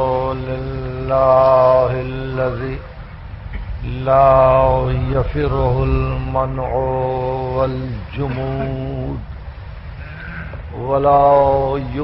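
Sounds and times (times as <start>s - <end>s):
man chanting: 0.0s - 3.0s, 3.7s - 9.4s, 10.5s - 12.0s.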